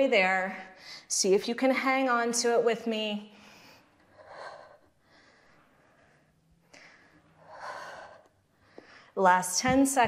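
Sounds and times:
woman breathing hard: 3.4s - 9.2s.

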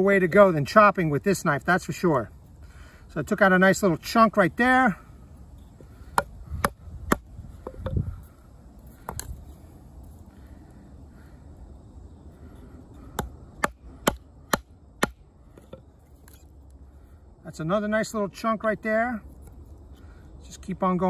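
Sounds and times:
knife chopping into a stick: 6.1s - 8.0s, 13.1s - 16.4s.

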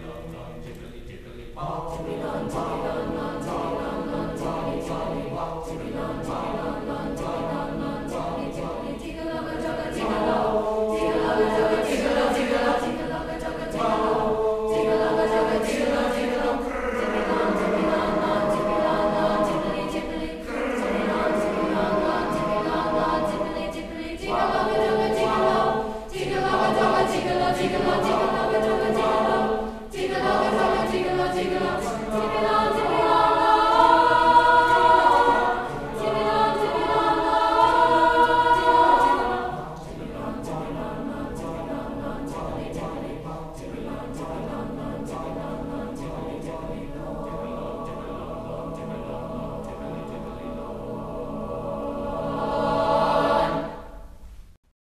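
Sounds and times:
mixed youth choir singing: 0.0s - 54.2s.

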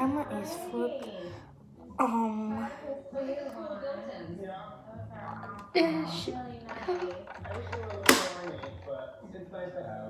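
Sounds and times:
television voices: 0.0s - 10.0s.

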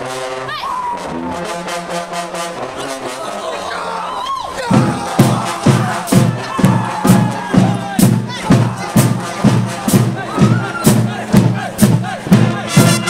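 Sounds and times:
trombones holding sustained notes: 0.0s - 3.9s, 12.3s - 13.0s
marching band playing: 0.0s - 13.0s.

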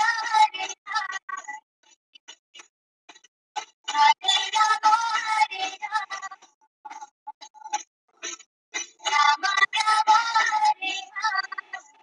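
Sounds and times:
dance song with singing: 0.0s - 1.6s, 3.9s - 6.4s, 8.9s - 12.0s.

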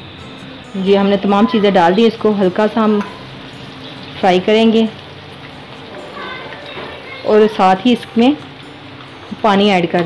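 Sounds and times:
ghee sizzling in a pot: 0.0s - 10.0s.

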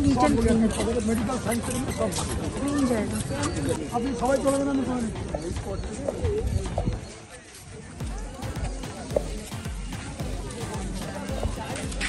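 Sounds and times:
people talking: 0.0s - 12.0s
dull low thumps: 8.0s - 12.0s.

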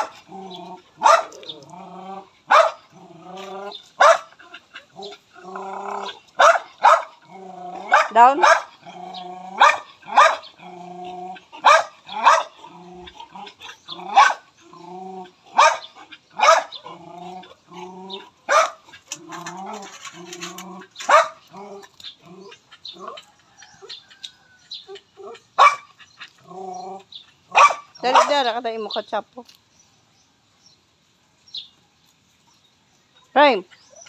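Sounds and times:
dogs drawn-out vocal sounds: 0.0s - 28.5s
dogs barking and yipping: 0.0s - 29.2s, 32.3s - 34.0s.

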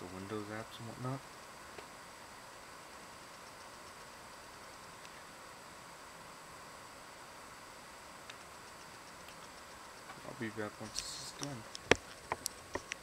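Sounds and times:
faint steady hiss: 0.0s - 13.0s
faint ticks: 3.2s - 5.2s, 8.2s - 13.0s.

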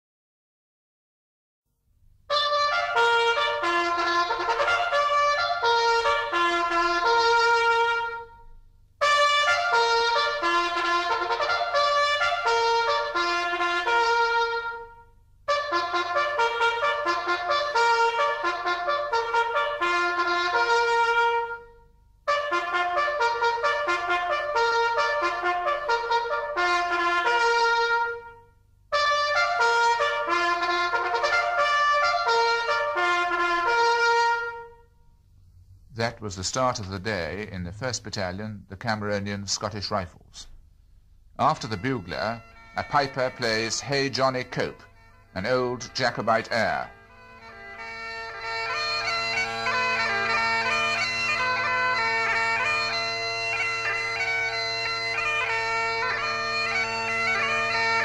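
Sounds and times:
bugle notes: 2.3s - 58.0s.

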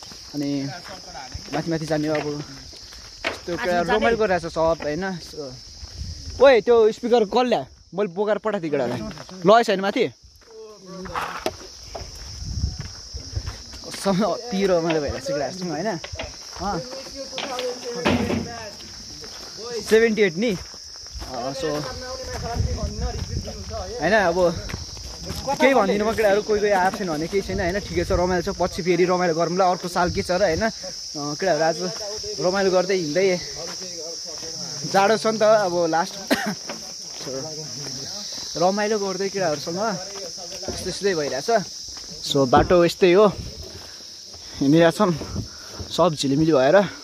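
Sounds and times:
crickets droning: 0.0s - 47.0s
high-pitched insect chorus: 0.0s - 47.0s
people talking: 0.4s - 2.6s, 3.5s - 5.6s, 6.4s - 11.6s, 13.2s - 20.6s, 21.2s - 43.8s.

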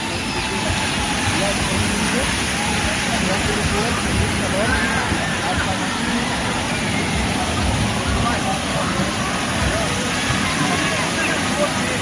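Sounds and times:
distant voices chattering: 0.0s - 12.0s
steady rushing water: 0.0s - 12.0s.

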